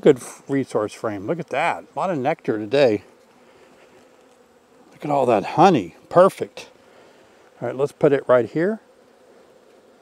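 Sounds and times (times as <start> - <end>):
bees buzzing: 0.0 - 10.0.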